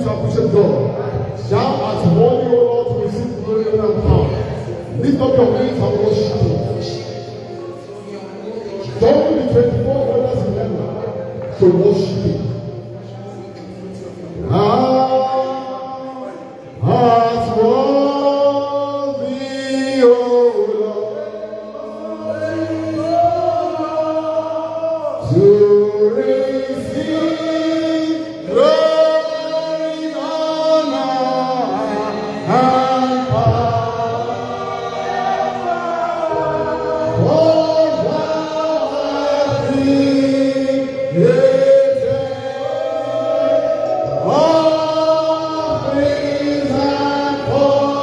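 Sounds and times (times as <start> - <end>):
man singing into a microphone: 0.0 - 12.6, 13.5 - 48.0.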